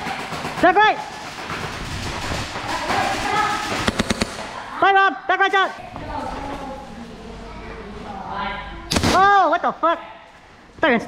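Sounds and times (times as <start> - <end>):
airsoft gunfire: 0.0 - 4.8.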